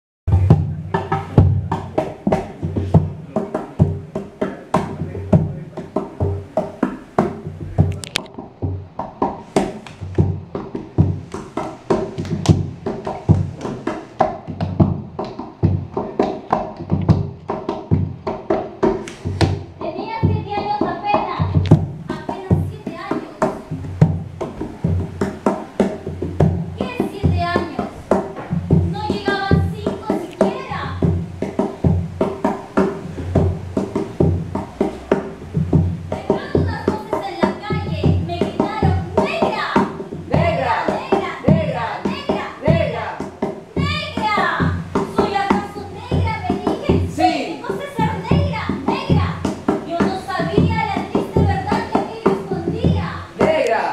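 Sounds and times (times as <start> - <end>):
quick percussive beat: 0.3 - 53.9
person singing with tremolo: 34.8 - 53.9.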